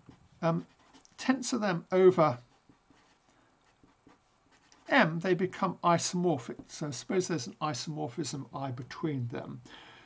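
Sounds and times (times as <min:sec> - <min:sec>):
marker scratching on paper: 0:00.0 - 0:01.5, 0:02.2 - 0:05.2
man talking: 0:00.4 - 0:02.4, 0:04.8 - 0:09.7.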